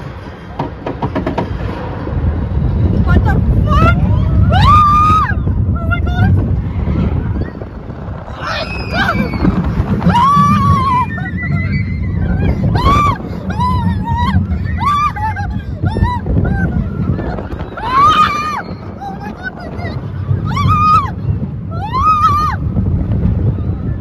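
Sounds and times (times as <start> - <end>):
ride rumble and wind noise: 0.0 - 24.0
riders screaming: 3.7 - 24.0.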